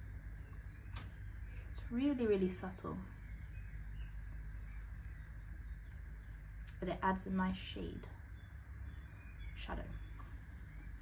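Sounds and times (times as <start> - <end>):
high-pitched whine: 0.0 - 11.0
low hum: 0.0 - 11.0.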